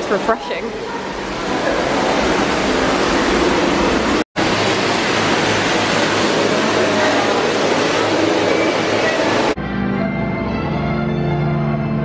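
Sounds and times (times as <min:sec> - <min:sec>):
flowing water rushing: 0:00.0 - 0:09.6.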